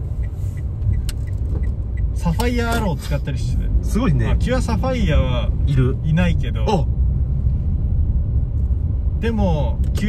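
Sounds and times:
car engine and tyres rumbling: 0.0s - 10.0s.

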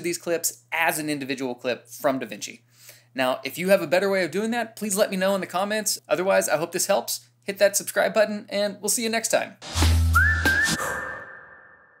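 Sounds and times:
whistle-like rising tone: 9.8s - 12.0s.

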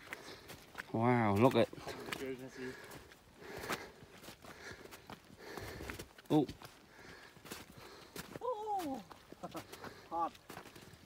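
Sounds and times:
footsteps crunching on snow: 0.0s - 11.0s
person's drawn-out exclamation: 8.4s - 9.1s.

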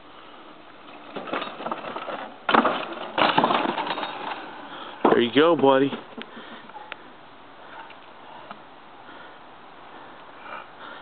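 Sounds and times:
tyres on dirt: 0.0s - 11.0s
bike and boards rattling: 0.8s - 6.9s
wooden planks slamming down: 1.1s - 4.4s.

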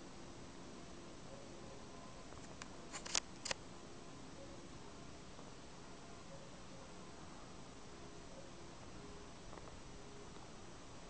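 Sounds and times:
small sharp clicks: 2.3s - 3.6s.

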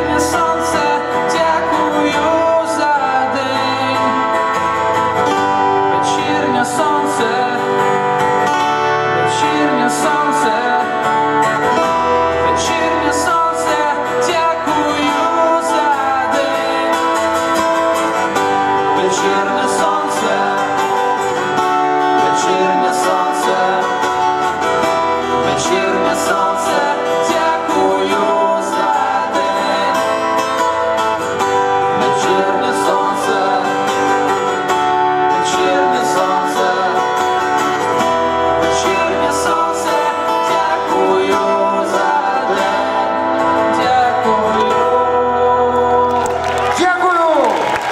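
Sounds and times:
man singing: 0.0s - 31.0s, 31.8s - 47.5s
acoustic guitars strummed: 0.0s - 47.9s.

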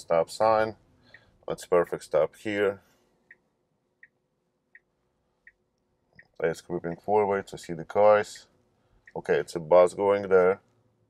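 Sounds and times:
turn signal ticking: 9.0s - 9.2s.

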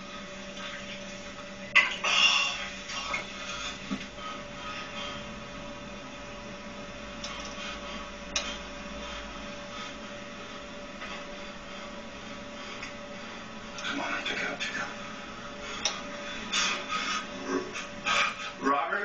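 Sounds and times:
steady hum and hiss: 0.0s - 19.0s.

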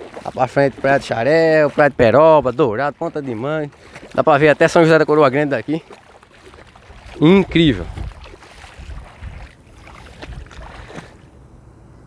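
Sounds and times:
faint splashing of sea water: 0.0s - 11.4s
wind rumbling on microphone: 5.8s - 12.0s.

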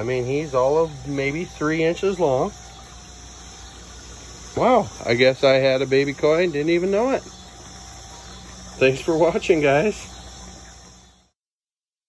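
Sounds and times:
outdoor background hiss: 0.0s - 11.4s.

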